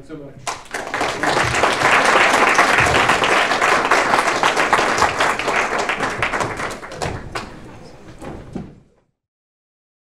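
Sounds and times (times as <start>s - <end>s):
lecture hall room noise: 0.0s - 9.1s.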